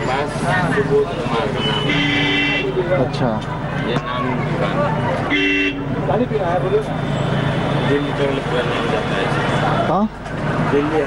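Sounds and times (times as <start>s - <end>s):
street noise: 0.0s - 11.0s
vehicle horn: 1.6s - 2.8s, 5.3s - 5.9s.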